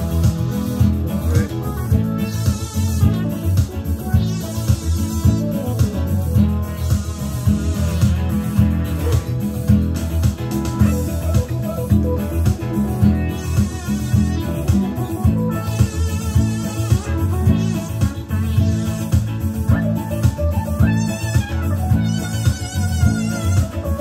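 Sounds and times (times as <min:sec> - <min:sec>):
acoustic guitar strumming: 0:00.0 - 0:24.0
electronic keyboard playing: 0:00.0 - 0:24.0.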